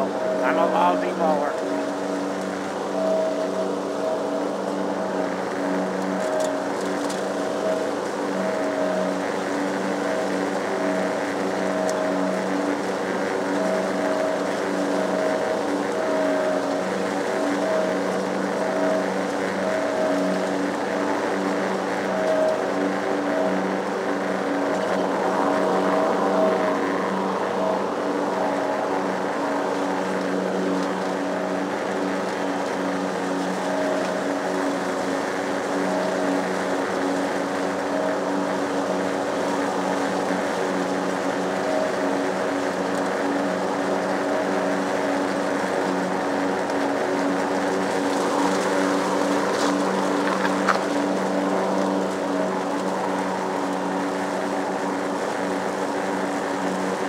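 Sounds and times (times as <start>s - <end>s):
lawn mower engine running: 0.0s - 57.0s.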